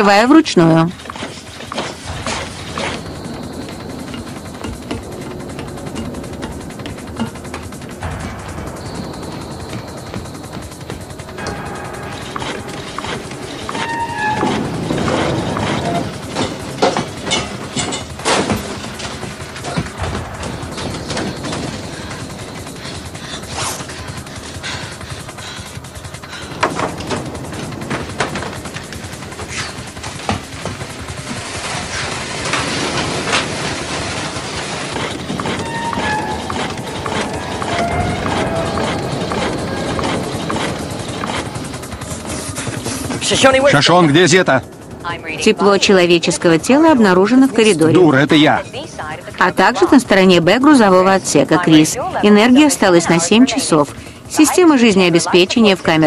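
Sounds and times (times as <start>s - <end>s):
mechanical rumbling: 0.0s - 56.0s
tense score music: 0.0s - 56.0s.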